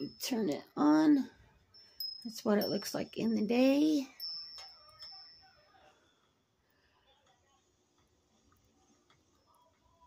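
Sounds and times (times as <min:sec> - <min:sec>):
wind chime ringing: 0:00.0 - 0:06.2.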